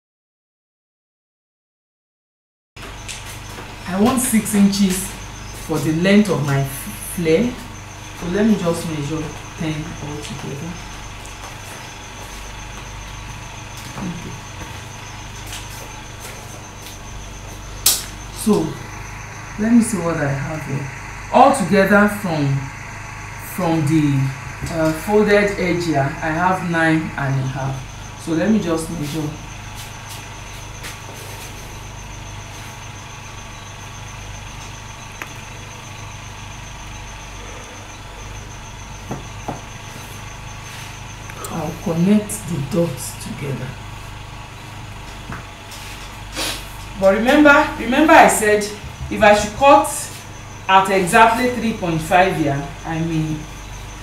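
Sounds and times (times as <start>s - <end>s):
steady background hum: 2.8s - 54.0s.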